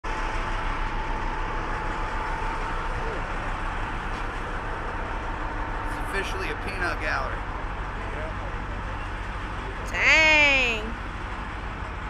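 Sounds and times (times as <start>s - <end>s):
constant whine: 0.0s - 12.0s
fire engines droning: 0.0s - 12.0s.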